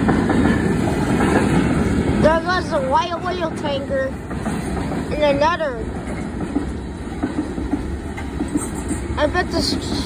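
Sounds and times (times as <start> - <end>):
train wheels rumbling on rail: 0.0 - 10.0.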